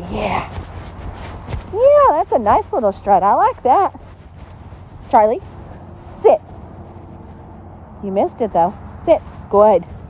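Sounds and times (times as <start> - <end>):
low outdoor background noise: 0.0 - 10.0.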